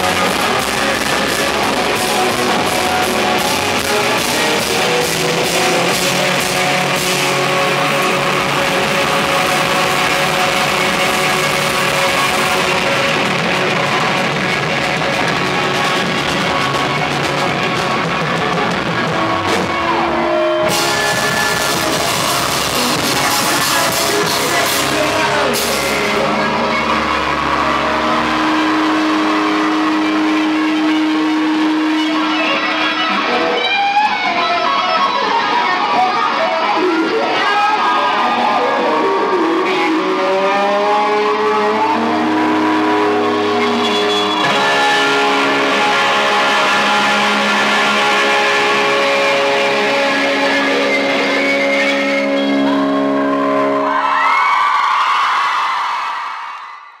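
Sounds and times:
electric guitar rock music: 0.0s - 55.7s
crowd cheering: 0.0s - 57.0s.

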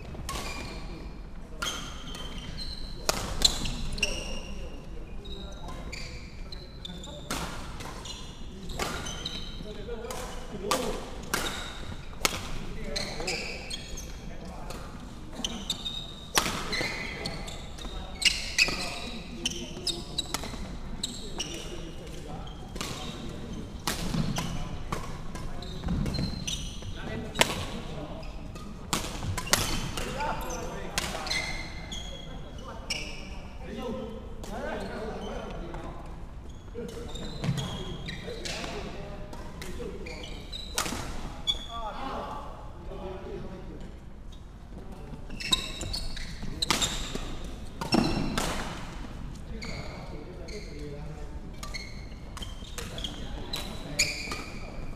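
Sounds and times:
shoe squeaks on wooden floor: 0.0s - 1.0s, 1.6s - 7.3s, 8.0s - 9.7s, 12.8s - 14.3s, 15.4s - 24.8s, 25.5s - 33.5s, 36.4s - 39.0s, 39.9s - 42.0s, 45.2s - 48.4s, 49.5s - 54.9s.

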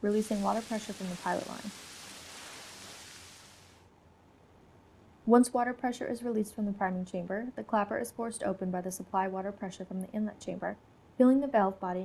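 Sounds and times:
water spraying hiss: 0.0s - 3.8s.

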